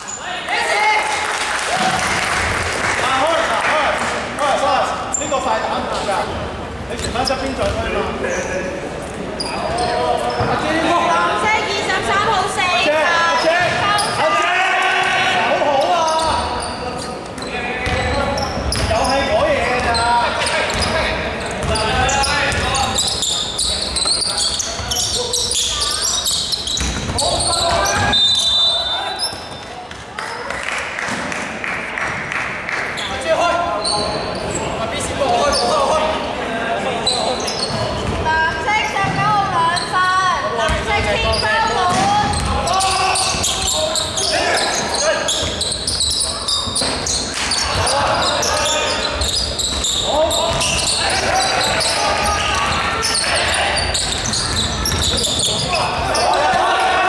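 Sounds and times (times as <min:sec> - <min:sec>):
players calling out: 0:09.4 - 0:29.6, 0:33.0 - 0:57.0
basketball bouncing on wooden court: 0:17.8 - 0:19.0, 0:20.7 - 0:22.9, 0:26.6 - 0:28.1, 0:41.8 - 0:43.7, 0:49.2 - 0:51.9, 0:53.4 - 0:55.7.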